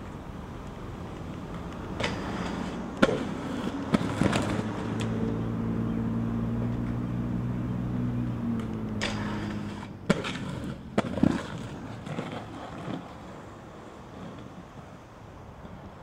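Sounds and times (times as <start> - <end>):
skateboard clacks on concrete: 0.0 - 5.4, 8.6 - 14.6
skateboard wheels rolling hum: 0.0 - 16.0.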